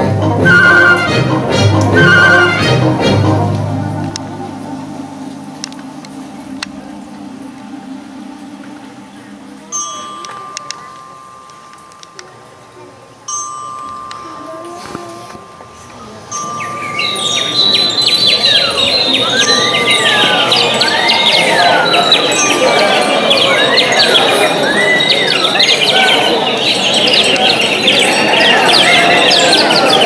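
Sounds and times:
high held tone: 0.4s - 29.2s
shimmer of chimes and percussion: 9.6s - 30.0s
whistle glides: 13.3s - 27.5s.

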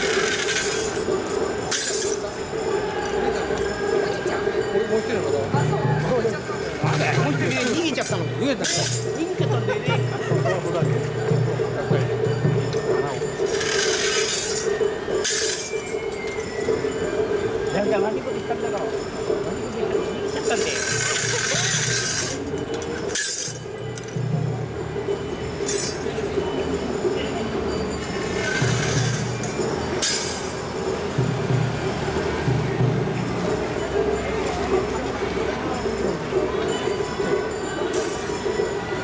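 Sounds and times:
metal rings jangling on staff: 0.0s - 2.4s, 6.9s - 9.4s, 13.4s - 16.4s, 20.3s - 24.2s, 25.6s - 26.2s, 28.3s - 30.7s
city traffic rumble: 0.0s - 39.0s.

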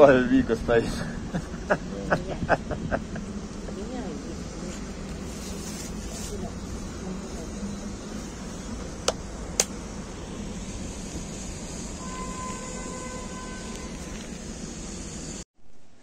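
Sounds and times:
city traffic: 0.0s - 15.4s
held tone: 11.7s - 14.2s.

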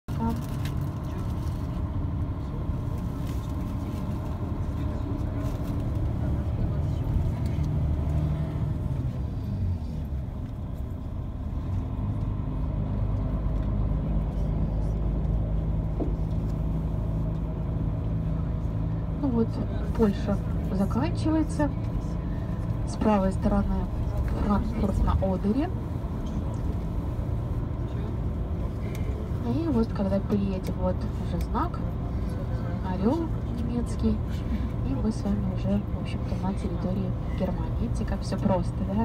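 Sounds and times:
bus engine and road rumble: 0.0s - 39.0s.

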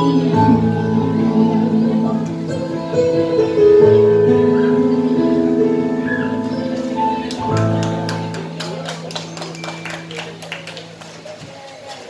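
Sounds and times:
audience hand claps: 7.2s - 12.0s.

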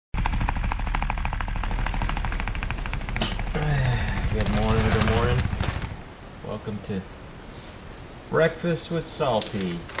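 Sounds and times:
helicopter rotor chopping: 0.2s - 6.1s
low rumble: 0.2s - 6.4s.

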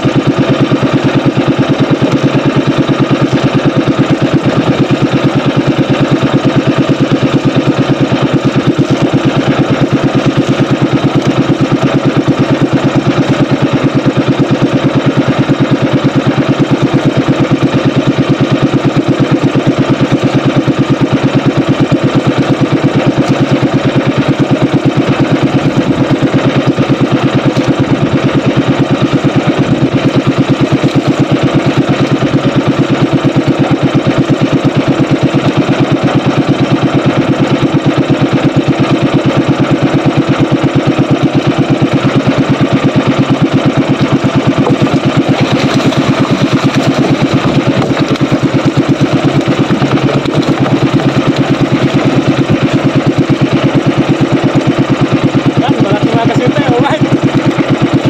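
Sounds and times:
boat engine running: 0.0s - 58.0s.

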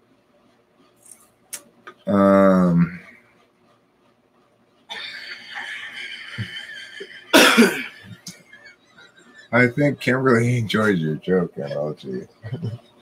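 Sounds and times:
person coughing: 4.9s - 5.2s, 7.3s - 8.2s
thin steady hiss: 4.9s - 13.0s.

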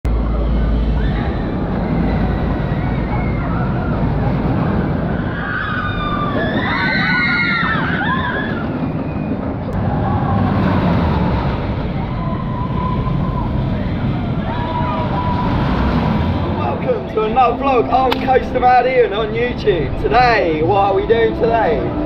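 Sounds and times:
roller coaster train rumbling: 0.0s - 22.0s
riders screaming: 0.9s - 16.6s.

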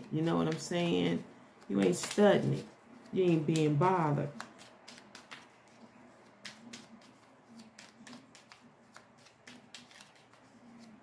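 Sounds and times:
cards being shuffled: 0.0s - 1.0s, 1.6s - 11.0s.

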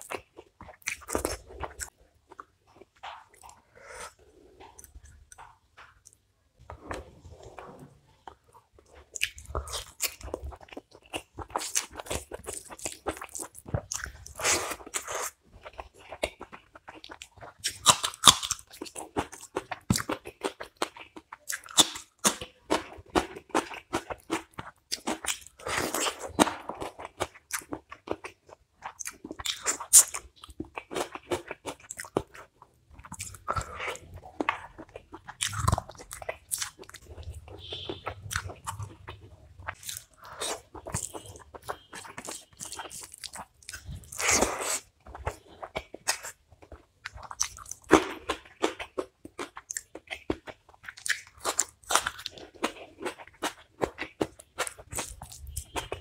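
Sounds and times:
man chewing food: 0.0s - 56.0s.

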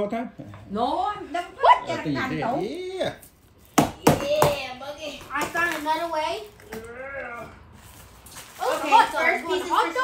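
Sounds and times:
people talking: 8.6s - 10.0s.

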